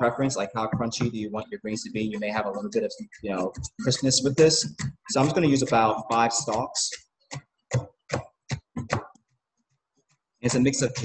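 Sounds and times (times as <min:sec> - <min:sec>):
knife chopping on cutting board: 0:03.4 - 0:06.9.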